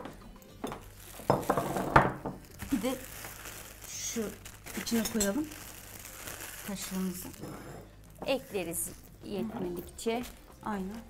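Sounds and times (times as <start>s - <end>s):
kitchen utensils and dishes clinking: 4.7s - 5.5s.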